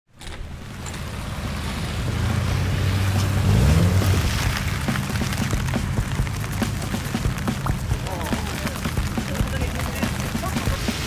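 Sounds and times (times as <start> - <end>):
car engine running at low speed: 0.2 - 11.0
steady hiss: 0.6 - 11.0.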